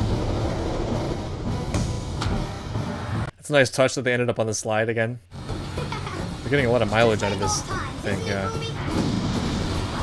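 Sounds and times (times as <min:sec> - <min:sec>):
rushing low rumble: 0:00.0 - 0:03.3.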